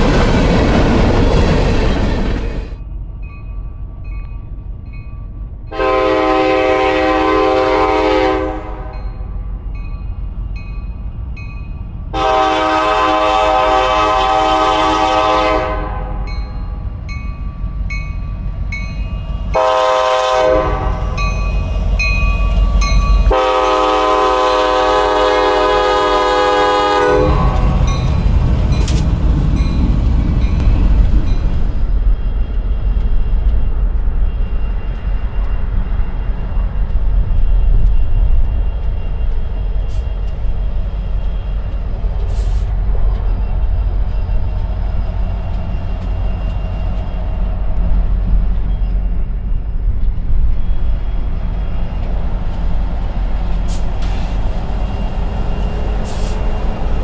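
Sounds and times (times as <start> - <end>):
train rolling past: 0.0 - 57.0
locomotive air horn: 5.7 - 9.0, 12.2 - 16.3, 19.5 - 21.2, 23.2 - 27.9.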